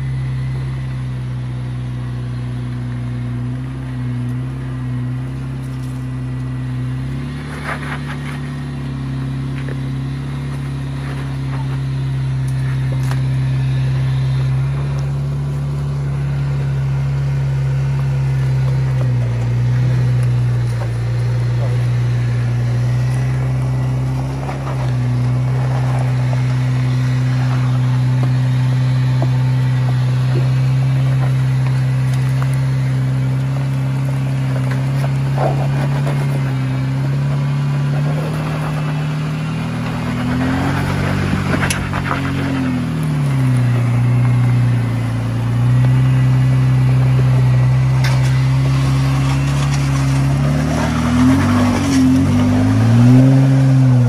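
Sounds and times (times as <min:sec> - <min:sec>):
engine running at low revs: 0:00.0 - 0:54.0.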